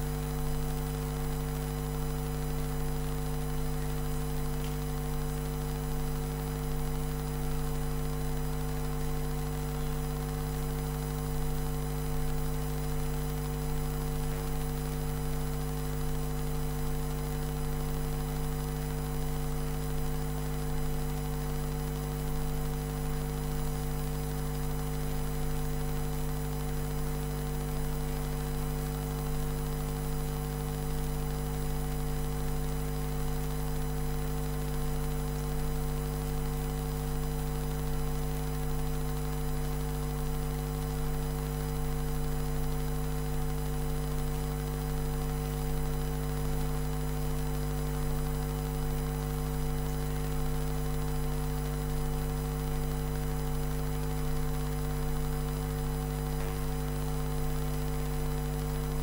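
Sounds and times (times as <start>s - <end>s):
electrical mains hum: 0.0s - 40.4s, 48.9s - 59.0s.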